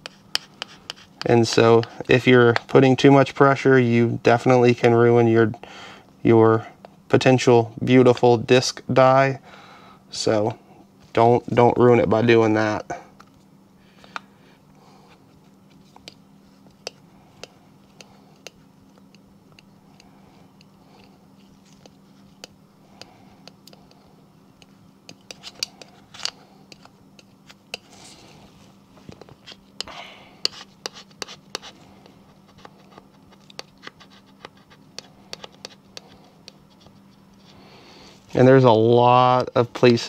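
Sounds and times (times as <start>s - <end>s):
low steady hum: 0.0s - 40.0s
hands rubbing vinyl on plastic: 30.4s - 37.6s.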